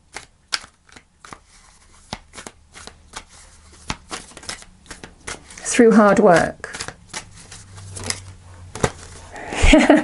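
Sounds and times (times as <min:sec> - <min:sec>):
cards being shuffled: 0:00.0 - 0:09.5.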